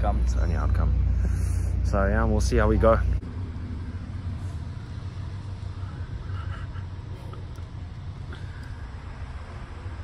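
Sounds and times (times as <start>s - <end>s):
road noise: 0.0s - 10.0s
vehicle engine rumble: 0.0s - 10.0s.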